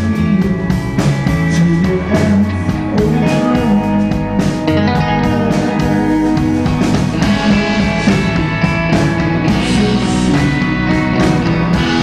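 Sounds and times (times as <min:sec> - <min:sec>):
electric guitar: 0:00.0 - 0:12.0
live rock band playing: 0:00.0 - 0:12.0.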